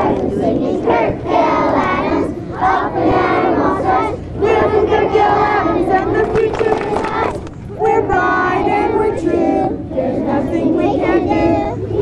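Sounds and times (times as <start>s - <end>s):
children chanting in unison: 0.0s - 12.0s.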